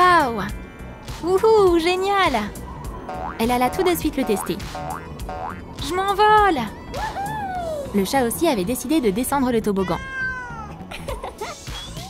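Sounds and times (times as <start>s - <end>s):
background music: 0.0s - 12.0s
cat meowing: 9.8s - 10.8s.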